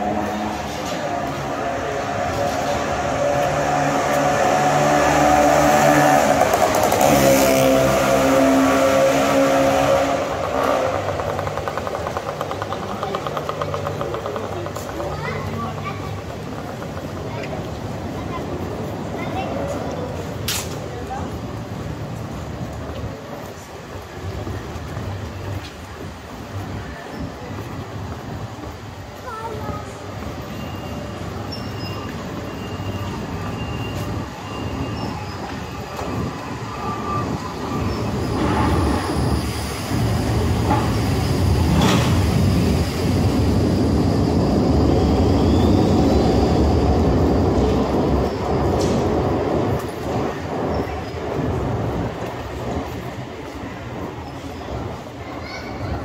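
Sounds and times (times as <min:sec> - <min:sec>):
street noise: 0:00.0 - 0:56.0
tram rumbling on rails: 0:00.0 - 0:56.0.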